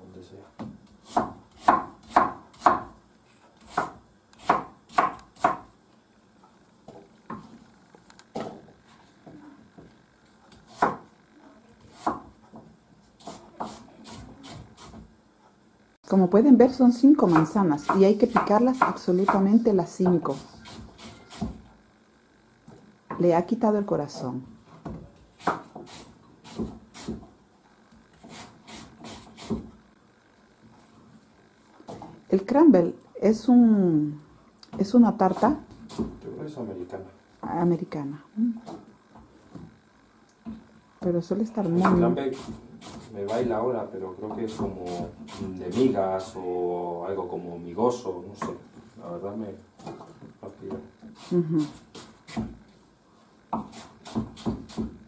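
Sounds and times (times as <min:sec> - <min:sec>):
knife chopping on wooden board: 0:00.6 - 0:03.0, 0:03.6 - 0:05.7, 0:10.6 - 0:11.1, 0:11.9 - 0:12.3, 0:17.2 - 0:19.5, 0:24.8 - 0:27.3, 0:35.3 - 0:36.2, 0:41.8 - 0:43.4, 0:51.2 - 0:52.6, 0:53.5 - 0:55.0.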